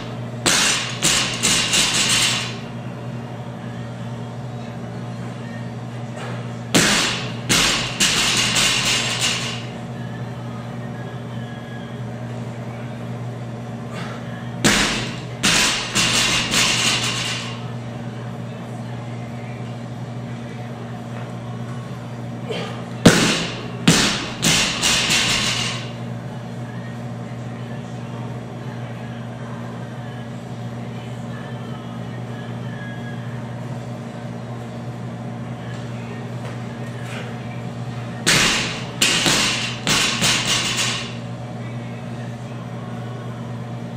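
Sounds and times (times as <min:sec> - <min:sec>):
steady low hum: 0:00.0 - 0:43.9.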